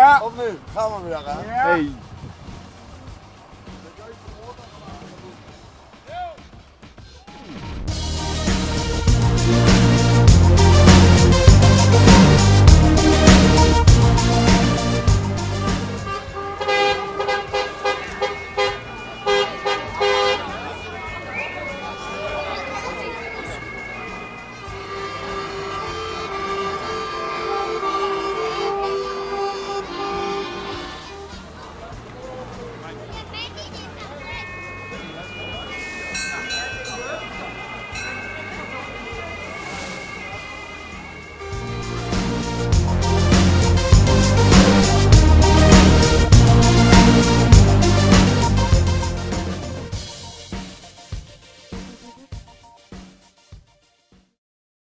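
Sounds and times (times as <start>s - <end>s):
low background music: 0.0s - 33.4s, 37.8s - 53.5s
accordion playing a tune: 8.2s - 32.5s, 33.2s - 51.0s
faint distant voices: 16.1s - 41.9s.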